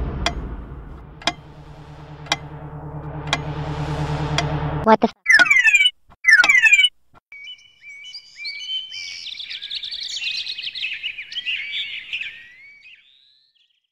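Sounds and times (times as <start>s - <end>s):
loud sweeping bird calls: 5.3s - 13.6s
birds chirping and trilling: 5.3s - 13.9s.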